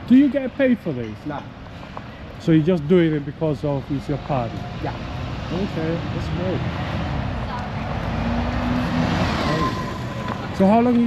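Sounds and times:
bus driving past: 1.6s - 11.0s.

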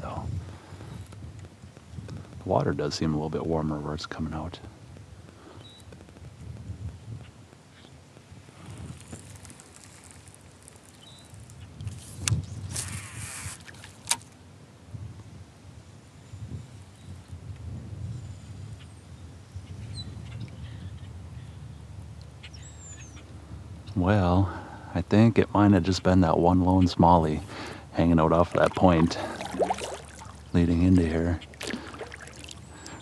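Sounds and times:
wind rumble on microphone: 0.0s - 33.0s.

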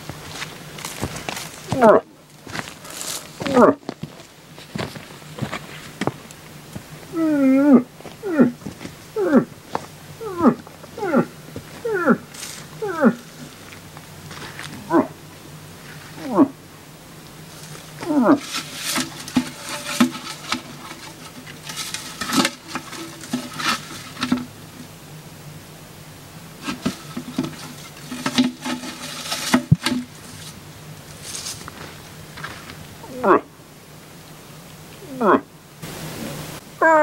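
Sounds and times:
rustling: 0.0s - 7.1s, 7.7s - 16.5s, 17.2s - 25.0s, 26.5s - 32.9s.

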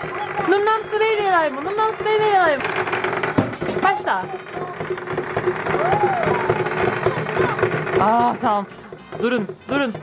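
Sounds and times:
toy motor whirring and ticking: 0.0s - 9.6s.

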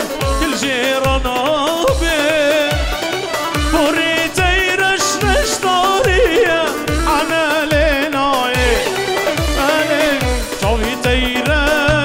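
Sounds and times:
keyboard dance music melody: 0.0s - 12.0s.

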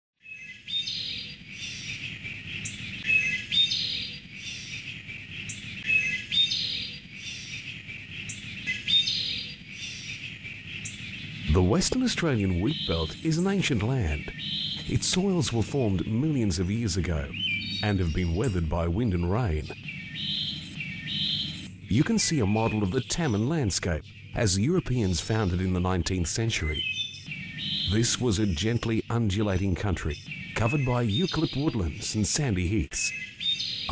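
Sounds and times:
birds chirping: 0.2s - 33.9s
low steady background: 0.5s - 33.9s
faint low hum: 6.6s - 31.2s.

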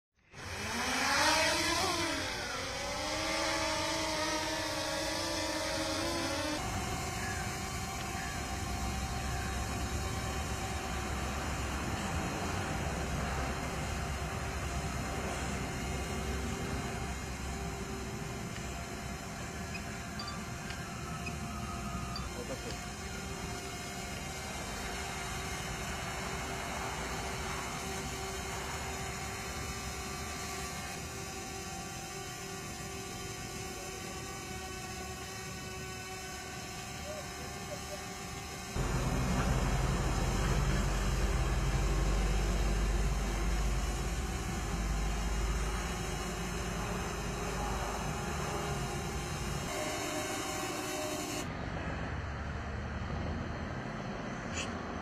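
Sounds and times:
drone propellers whining: 0.2s - 52.2s.

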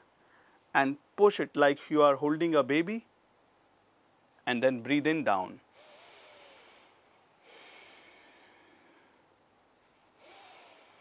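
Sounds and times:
faint nasal breathing: 5.7s - 9.3s, 9.9s - 11.0s.

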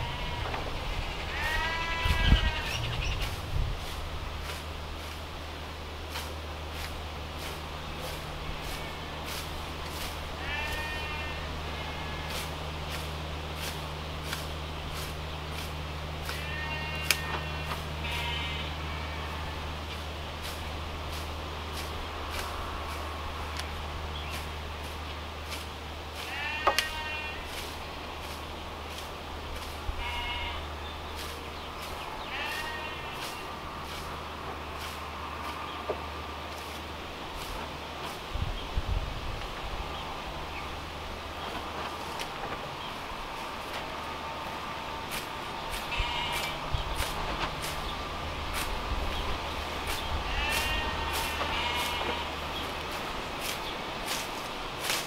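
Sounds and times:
farm animals bleating: 0.0s - 4.0s, 6.8s - 36.8s, 41.4s - 55.0s
hand scythe cutting grass: 0.0s - 55.0s.

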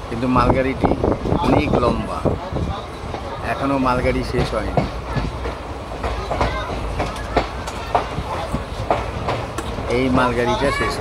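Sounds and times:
train rumbling on rails: 0.0s - 11.0s
wheels clacking over rail joints: 0.8s - 11.0s.

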